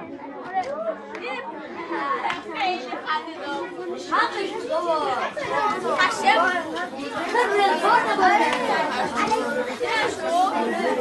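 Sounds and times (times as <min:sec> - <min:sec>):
schoolboys chattering: 0:00.0 - 0:11.0.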